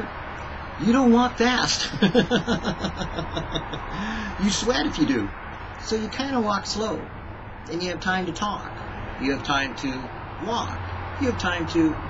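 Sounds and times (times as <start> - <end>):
man chuckling: 1.8 - 4.4.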